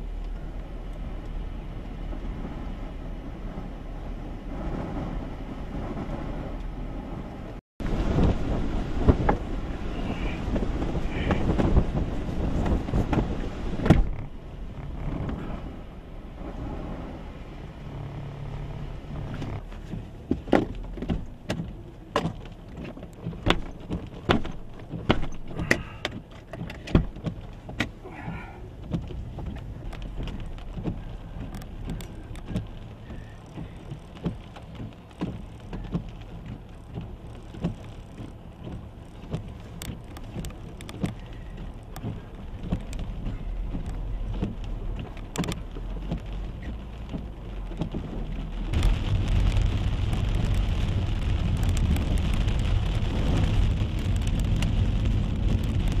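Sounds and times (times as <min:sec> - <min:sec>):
rain on a car roof: 0:00.0 - 0:56.0
raindrop taps: 0:07.8 - 0:15.5, 0:19.1 - 0:56.0.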